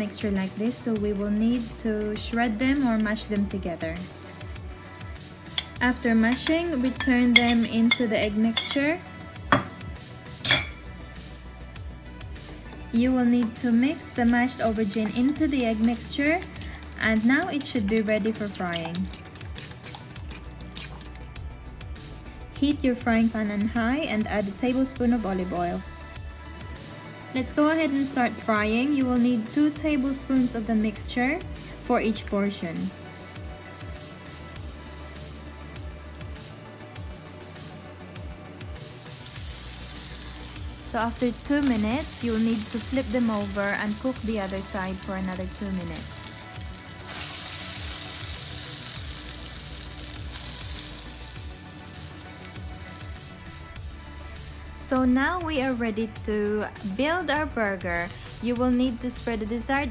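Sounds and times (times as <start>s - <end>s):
faint background music: 0.0s - 59.9s
patties sizzling in oil: 5.5s - 9.0s, 33.4s - 53.8s
metal fork clinking glass: 5.6s - 8.9s, 10.5s - 10.8s.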